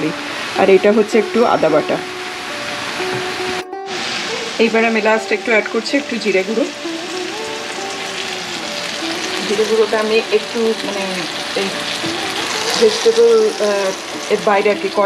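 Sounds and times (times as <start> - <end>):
vegetables sizzling in a frying pan: 0.0 - 15.0.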